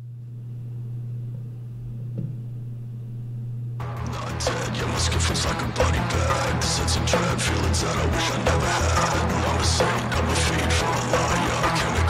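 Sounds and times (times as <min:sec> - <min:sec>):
steady low drone: 0:00.0 - 0:12.0
loud band music: 0:03.8 - 0:12.0.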